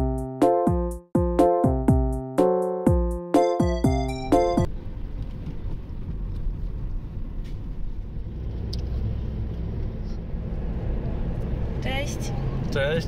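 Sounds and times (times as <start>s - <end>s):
car engine and tyres rumbling: 4.7s - 13.0s.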